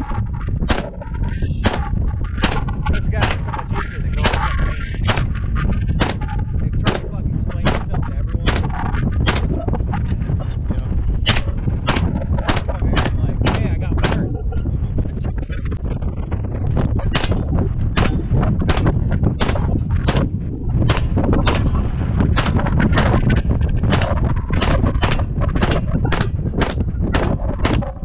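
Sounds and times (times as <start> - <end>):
pistol gunshots: 0.7 - 1.0, 1.6 - 3.6, 4.2 - 5.4, 6.0 - 9.6, 11.2 - 14.3, 17.1 - 28.0.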